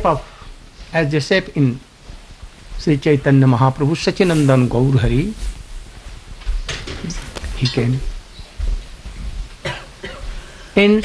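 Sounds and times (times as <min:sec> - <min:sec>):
man speaking: 0:00.0 - 0:00.3, 0:00.9 - 0:01.8, 0:02.8 - 0:05.5, 0:07.0 - 0:08.1
person coughing: 0:09.6 - 0:10.4.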